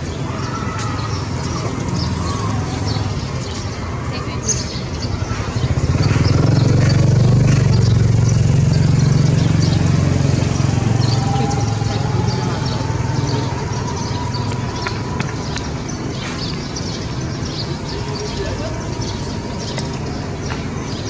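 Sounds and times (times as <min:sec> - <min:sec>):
street traffic: 0:00.0 - 0:21.0
motorbike engine running: 0:05.0 - 0:21.0.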